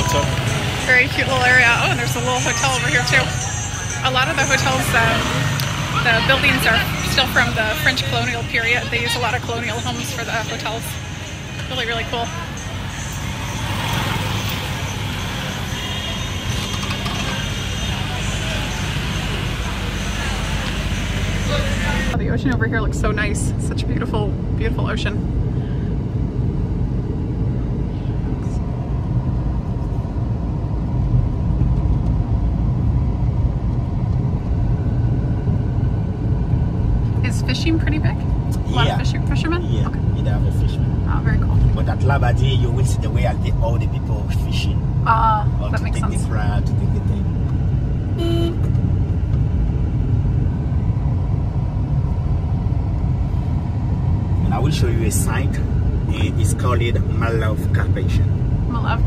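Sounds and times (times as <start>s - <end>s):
car engine and tyre rumble: 0.0s - 59.0s
car horn toot: 48.2s - 48.7s.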